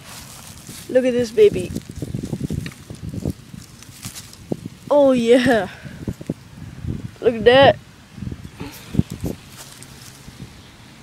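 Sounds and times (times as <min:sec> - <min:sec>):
fish rustling on grass: 0:00.0 - 0:04.9, 0:08.7 - 0:10.6.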